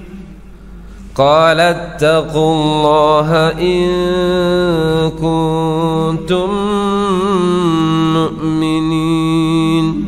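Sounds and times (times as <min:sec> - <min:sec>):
man chanting melodically: 0:01.2 - 0:10.0.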